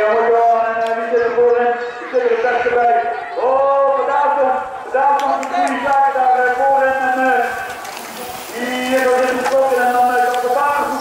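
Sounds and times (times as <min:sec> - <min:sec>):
spectators shouting encouragement: 0:01.6 - 0:11.0.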